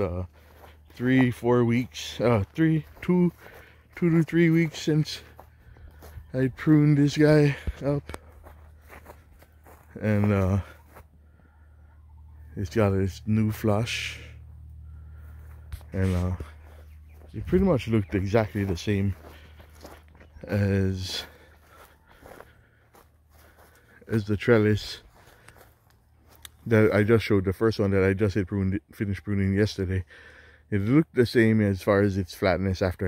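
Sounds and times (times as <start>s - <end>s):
low steady rumble: 0.0s - 20.3s
footsteps on grass: 0.0s - 28.0s.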